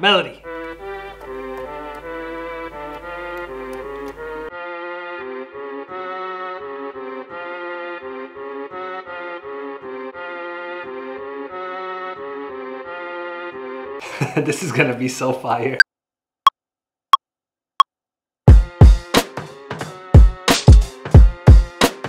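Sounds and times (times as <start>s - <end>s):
reedy keyboard melody: 0.3s - 14.0s.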